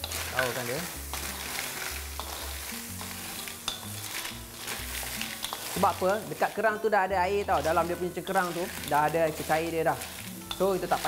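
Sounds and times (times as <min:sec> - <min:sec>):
cockles sizzling in a wok: 0:00.0 - 0:11.0
wooden spatula stirring shells: 0:00.0 - 0:11.0.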